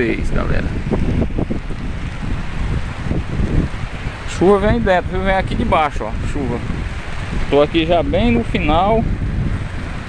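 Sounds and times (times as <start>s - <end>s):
heavy rain hiss: 0.0s - 10.0s
wind buffeting microphone: 0.0s - 10.0s.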